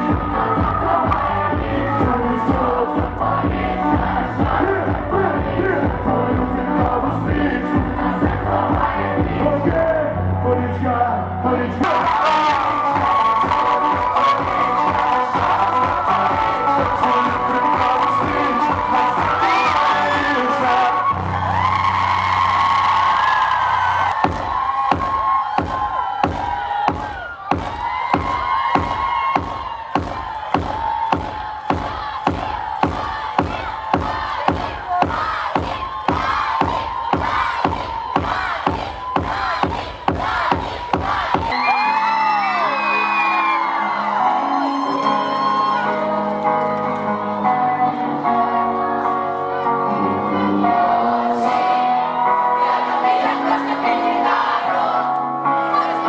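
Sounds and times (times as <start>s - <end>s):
crowd whooping: 0.0s - 2.9s, 11.8s - 55.1s
steady drum beat: 0.0s - 9.9s, 24.1s - 41.6s
person singing: 0.0s - 21.0s, 32.8s - 56.0s.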